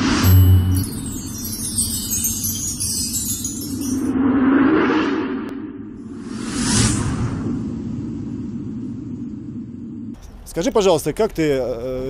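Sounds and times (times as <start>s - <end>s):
whoosh: 0.0s - 1.6s, 3.9s - 10.2s
steady low drone: 3.8s - 10.2s.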